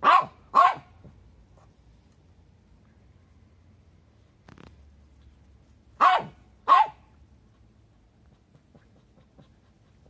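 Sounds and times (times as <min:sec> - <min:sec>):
small dog barking: 0:00.0 - 0:01.0, 0:06.0 - 0:07.2.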